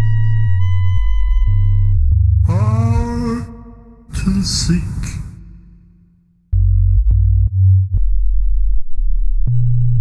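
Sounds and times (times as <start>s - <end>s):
deep synth bass: 0.1s - 10.0s.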